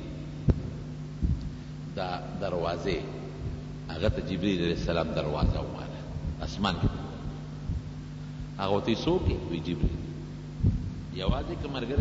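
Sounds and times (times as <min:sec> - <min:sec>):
low electrical hum: 0:00.0 - 0:12.0
soft low thump: 0:00.5 - 0:01.6, 0:05.4 - 0:08.6, 0:09.2 - 0:12.0.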